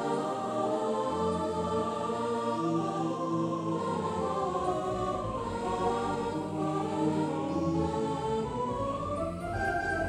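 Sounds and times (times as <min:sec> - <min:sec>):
synthesizer choir-like chords: 0:00.0 - 0:10.0.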